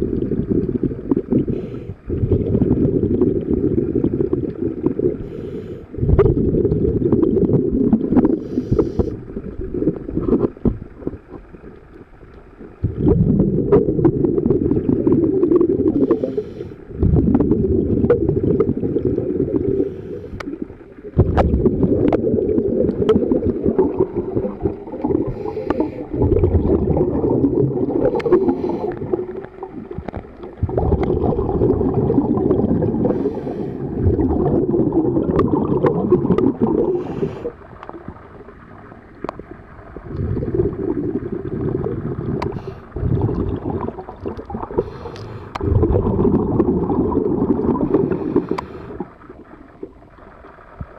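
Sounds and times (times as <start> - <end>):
scuba regulator bubbles: 0.0 - 50.9
inhalation hiss: 1.4 - 2.1, 5.2 - 6.0, 8.3 - 9.3, 15.9 - 16.9, 19.6 - 20.6, 25.2 - 26.2, 28.0 - 29.2, 33.0 - 33.9, 36.8 - 37.6, 42.4 - 43.0, 44.8 - 45.6, 48.0 - 49.1.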